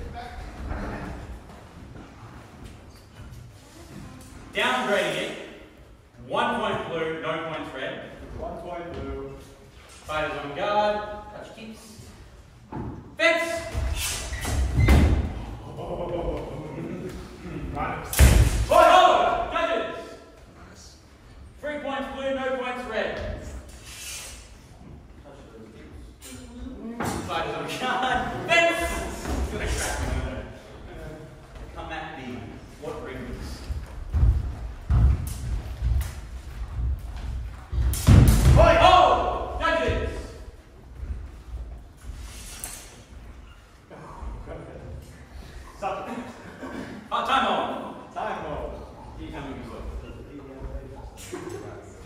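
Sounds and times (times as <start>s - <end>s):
people shouting: 18.6s - 19.6s, 38.5s - 40.2s.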